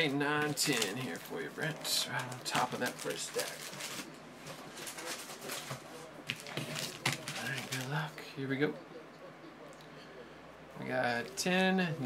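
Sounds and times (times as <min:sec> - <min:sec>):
foil wrappers crinkling: 0:00.0 - 0:08.1.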